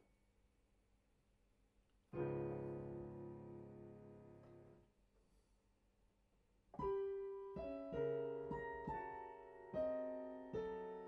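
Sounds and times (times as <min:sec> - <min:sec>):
piano chord: 0:02.2 - 0:04.8.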